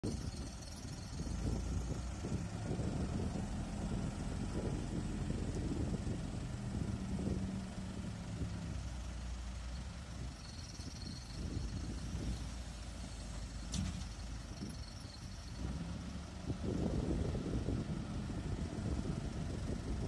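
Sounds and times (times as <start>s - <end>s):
diesel engine under load: 0.0s - 20.0s.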